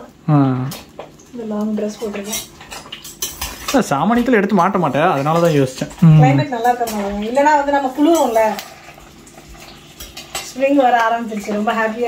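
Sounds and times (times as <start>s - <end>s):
metal spoon stirring food in pan: 1.0s - 12.0s.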